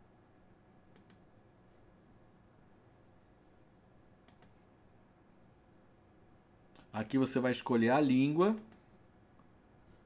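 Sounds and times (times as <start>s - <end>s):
computer mouse clicks: 0.9s - 1.3s, 4.2s - 4.6s, 8.5s - 8.9s.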